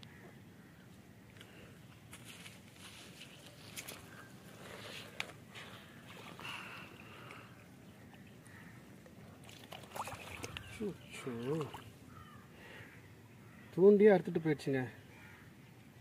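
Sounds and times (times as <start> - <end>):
faint outdoor ambience: 0.0 - 16.0.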